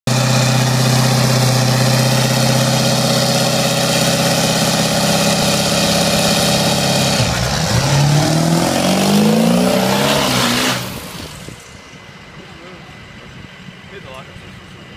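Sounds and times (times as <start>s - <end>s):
truck accelerating through gears: 0.1s - 11.7s
truck engine revving: 0.1s - 12.0s.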